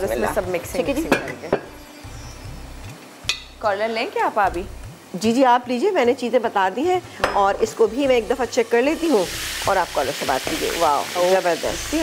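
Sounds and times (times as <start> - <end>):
chicken sizzling in oil: 1.0 - 12.0.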